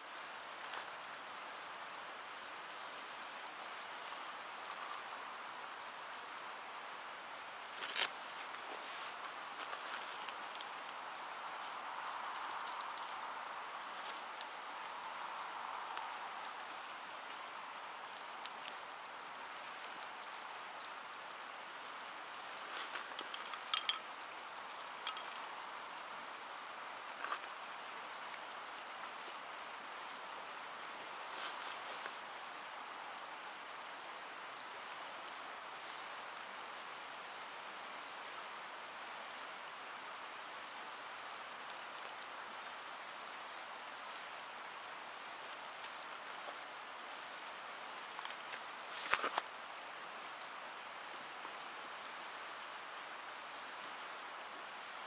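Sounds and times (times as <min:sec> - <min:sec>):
river rushing: 0:00.0 - 0:55.0.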